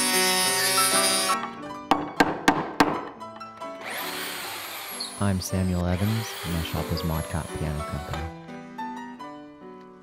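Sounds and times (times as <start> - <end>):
background music with held notes: 0.0 - 10.0
chisel chopping into wood: 1.9 - 3.0.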